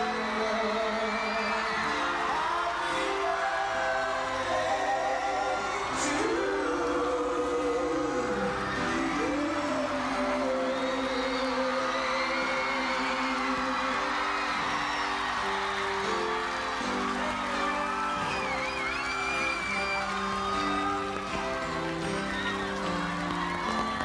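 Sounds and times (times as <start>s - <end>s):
crowd cheering and whooping: 0.0s - 24.0s
live pop band music: 0.0s - 24.0s.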